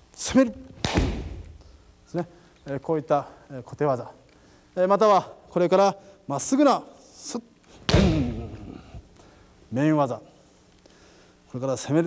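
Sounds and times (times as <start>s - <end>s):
foot stamp and strike slap: 0.7s - 1.7s, 7.8s - 8.8s.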